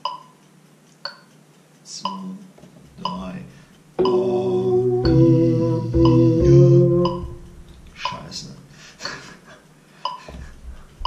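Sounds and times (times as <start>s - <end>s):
man singing: 4.0s - 7.6s
electronic keyboard chords: 4.0s - 8.0s.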